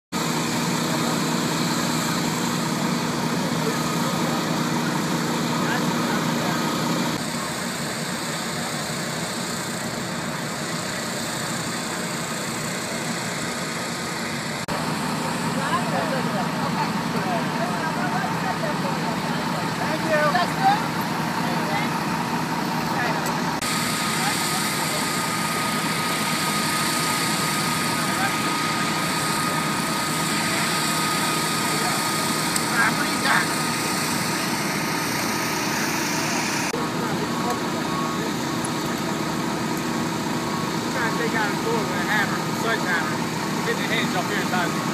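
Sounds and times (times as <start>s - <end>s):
fire truck engines running: 0.1s - 44.9s
steady thin whine: 0.2s - 44.9s.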